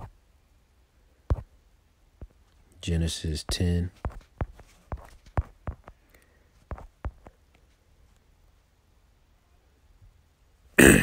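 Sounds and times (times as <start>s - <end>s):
man's throat sound: 10.8s - 11.0s.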